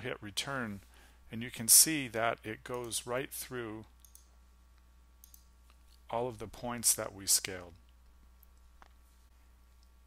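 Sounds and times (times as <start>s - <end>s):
computer mouse clicks: 4.0s - 4.3s, 5.2s - 6.0s.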